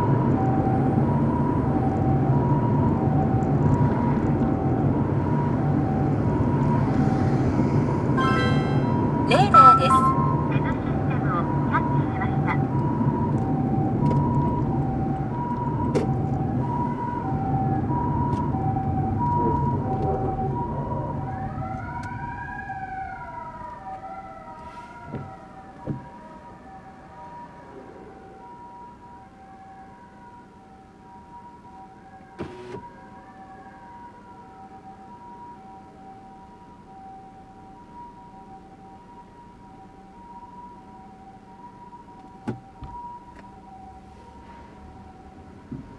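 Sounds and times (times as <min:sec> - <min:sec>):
siren wails: 0:00.0 - 0:45.7
car engine and road rumble: 0:00.0 - 0:45.9
two-tone ambulance siren: 0:00.0 - 0:45.9.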